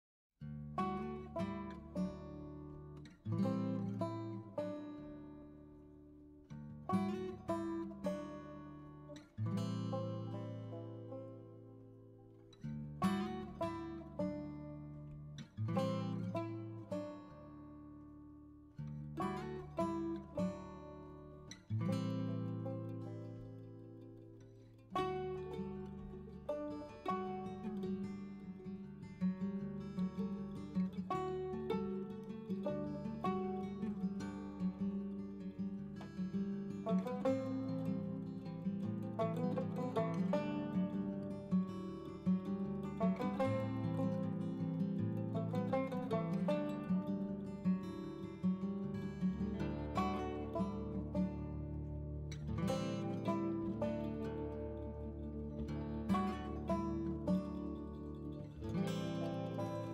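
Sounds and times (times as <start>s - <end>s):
acoustic guitar picking: 0.4s - 59.9s.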